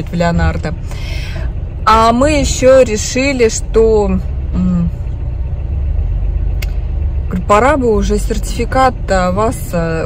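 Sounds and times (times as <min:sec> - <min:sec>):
car engine idling: 0:00.0 - 0:10.0
woman humming: 0:04.5 - 0:05.0.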